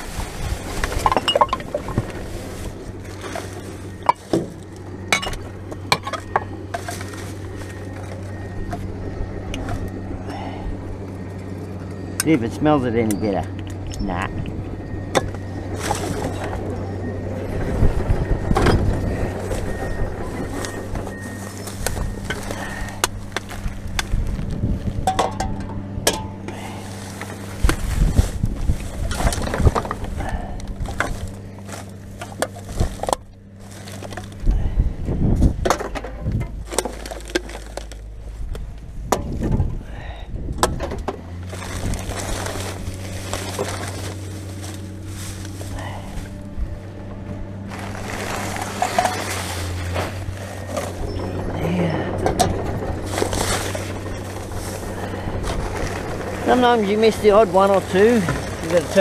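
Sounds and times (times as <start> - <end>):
plastic bags rustling: 0.0 - 8.9, 15.3 - 16.8, 17.7 - 25.3, 26.4 - 34.6, 35.9 - 38.5, 41.1 - 46.9, 47.6 - 59.0
steady low hum: 0.0 - 59.0
bottles clinking and knocking: 0.8 - 2.2, 3.1 - 7.3, 25.0 - 26.4.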